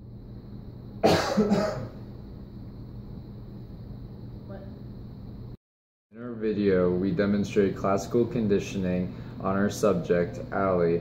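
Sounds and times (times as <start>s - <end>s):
person coughing: 1.0s - 2.0s.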